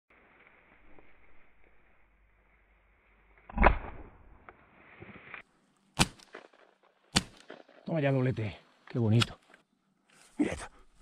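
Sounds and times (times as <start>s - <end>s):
shotgun shots: 6.0s - 7.6s.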